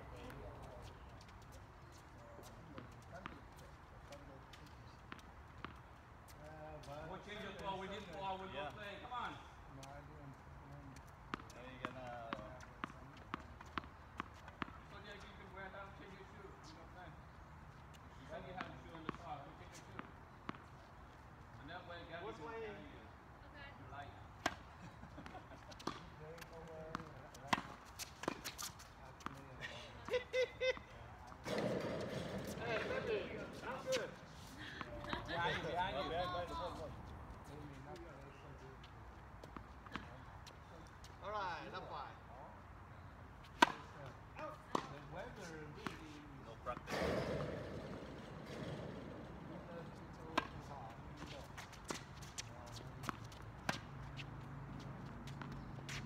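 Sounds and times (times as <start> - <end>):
tennis ball bouncing on hard court: 11.3 - 14.9, 25.8 - 26.0, 26.9 - 29.3, 31.4 - 34.2, 43.5 - 44.0, 44.7 - 45.0, 50.3 - 54.2
tennis ball struck by racket: 43.6 - 43.9, 44.7 - 44.9, 50.3 - 50.6.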